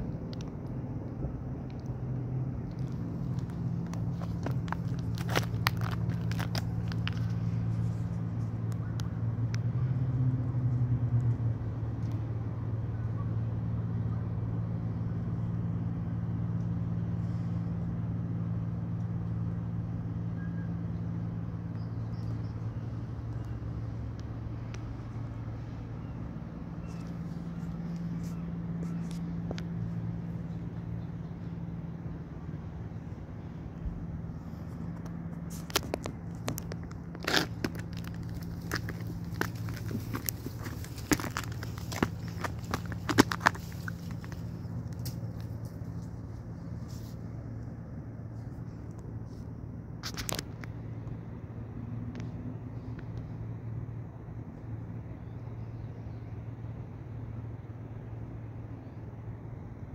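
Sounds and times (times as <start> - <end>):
twigs crackling underfoot: 0.0 - 9.7, 21.7 - 31.8, 32.8 - 47.7
low mechanical hum: 0.0 - 59.9.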